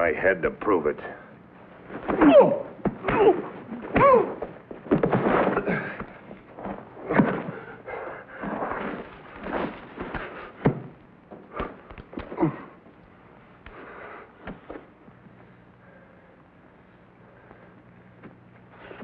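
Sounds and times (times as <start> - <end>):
fight knocks and scuffles: 1.8 - 7.6.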